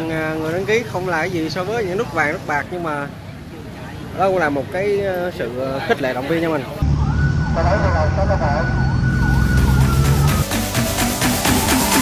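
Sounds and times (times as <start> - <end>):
siren wailing: 6.8 - 10.5
deep bass drone: 6.8 - 12.0.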